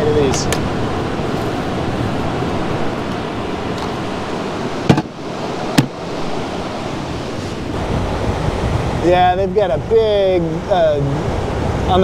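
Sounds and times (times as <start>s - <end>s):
ocean surf breaking on a beach: 0.0s - 12.0s.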